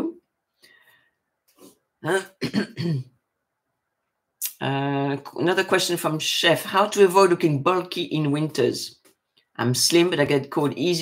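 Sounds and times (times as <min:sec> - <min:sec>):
woman clearing her throat: 0:02.2 - 0:03.1.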